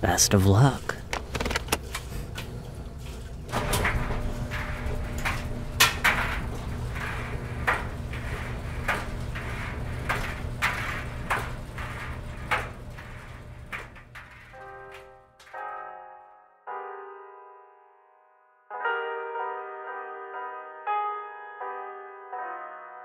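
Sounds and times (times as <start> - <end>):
soft piano chords: 14.2 - 23.0.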